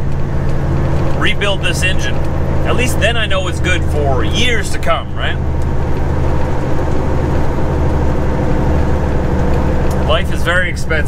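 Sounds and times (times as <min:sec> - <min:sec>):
road noise: 0:00.0 - 0:11.0
truck diesel engine drone: 0:00.0 - 0:11.0.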